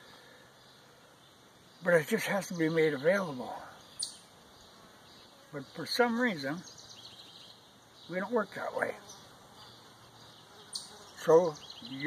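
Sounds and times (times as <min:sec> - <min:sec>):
faint birds: 0:00.0 - 0:12.0
high buzz of insects: 0:00.0 - 0:12.0.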